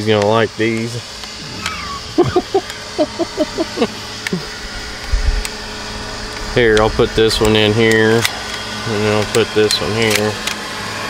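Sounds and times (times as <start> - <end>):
man chuckling: 1.4 - 4.7.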